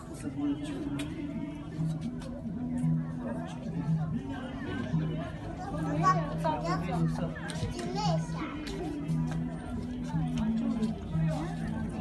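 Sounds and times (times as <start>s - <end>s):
background music with low tone: 0.0s - 12.0s
people talking: 0.0s - 12.0s
child's voice: 5.6s - 7.1s, 7.8s - 8.5s.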